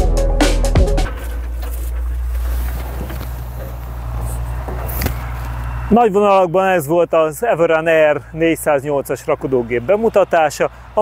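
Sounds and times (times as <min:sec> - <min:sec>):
loader engine idling: 0:00.0 - 0:11.0.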